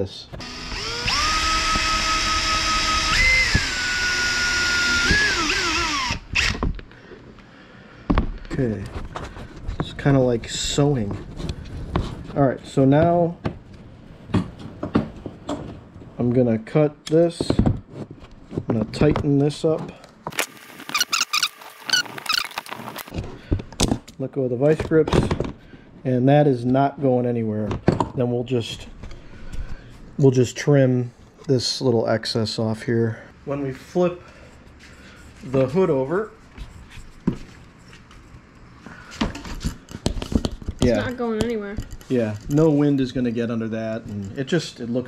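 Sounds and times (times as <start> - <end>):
cordless drill whining: 0.4 - 6.8
wire twisting squeaks: 20.4 - 23.1.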